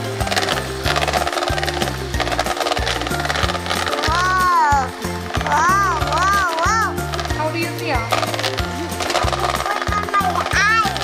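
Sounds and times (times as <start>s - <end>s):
background music with bass line: 0.0s - 11.0s
electric hand mixer buzzing: 0.0s - 11.0s.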